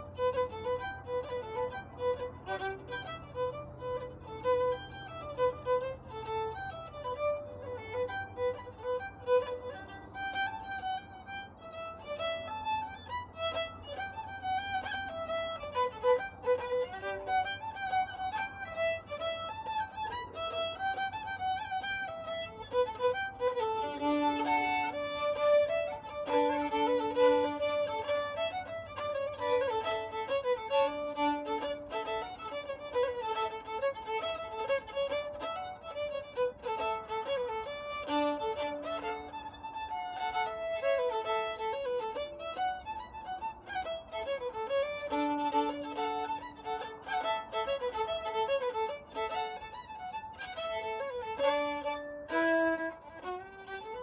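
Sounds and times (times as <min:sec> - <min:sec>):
fiddle playing fast dance tune: 0:00.0 - 0:54.0
low fiddle drone note: 0:00.0 - 0:54.0.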